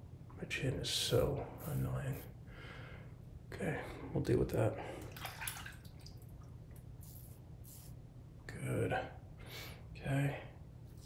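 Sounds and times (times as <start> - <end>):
razor scraping stubble: 7.0 - 8.0.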